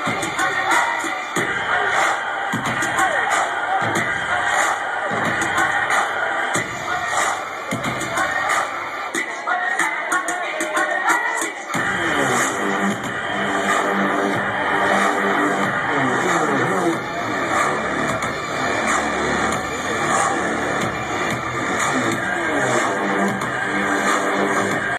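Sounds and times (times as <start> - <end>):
live dubstep music: 0.0 - 24.9.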